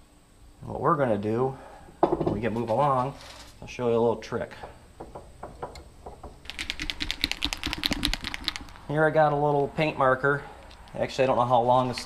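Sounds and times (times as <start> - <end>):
paint marker ball rattling: 6.2 - 8.9.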